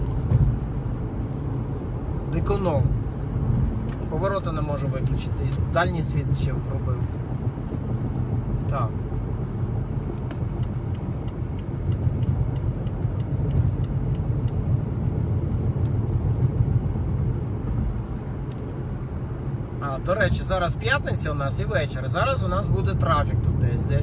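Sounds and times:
car engine and road rumble: 0.0s - 24.0s
faint regular ticking: 10.0s - 16.0s.

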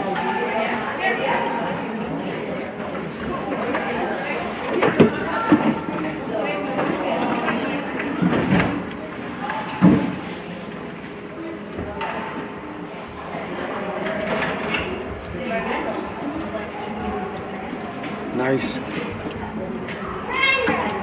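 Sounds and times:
spectators talking: 0.0s - 21.0s.

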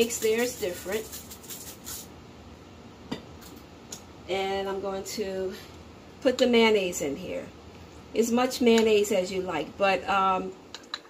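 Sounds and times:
shaker jar rattling: 0.0s - 2.1s.

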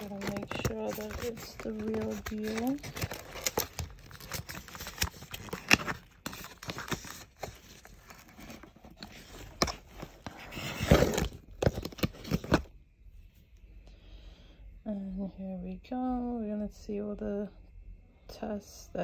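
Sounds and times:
cardboard box scraping and rustling: 0.0s - 12.6s.

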